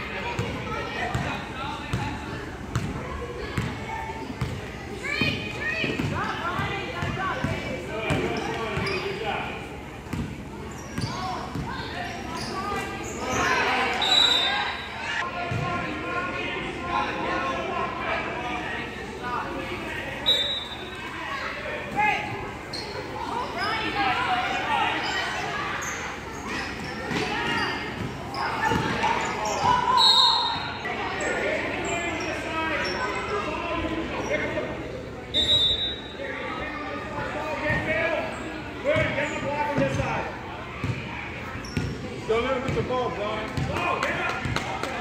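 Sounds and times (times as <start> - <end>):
chatter and calls of people: 0.0 - 45.0.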